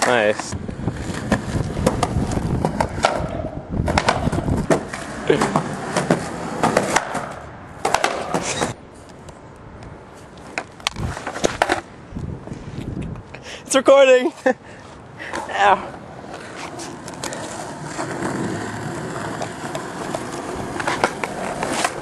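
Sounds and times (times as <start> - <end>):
skateboard clacking on ground: 0.0 - 9.4, 10.2 - 11.9, 15.3 - 22.0
skateboard wheels rolling on concrete: 0.0 - 22.0.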